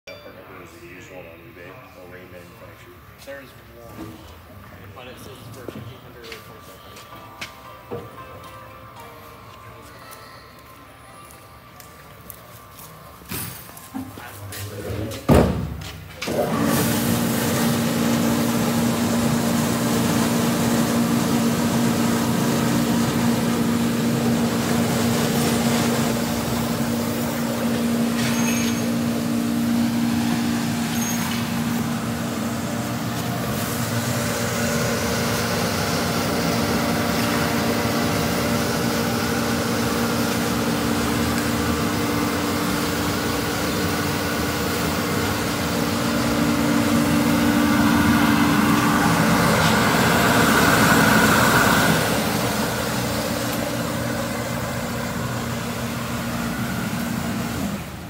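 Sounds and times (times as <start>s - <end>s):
parts washer humming and hissing: 0.8s - 58.0s.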